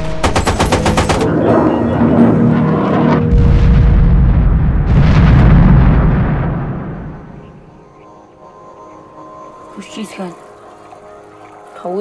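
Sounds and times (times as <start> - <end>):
machine gun burst: 0.1 - 1.3.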